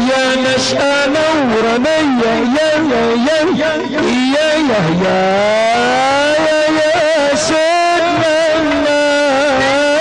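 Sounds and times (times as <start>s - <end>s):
religious chanting with sliding note: 0.0s - 10.0s.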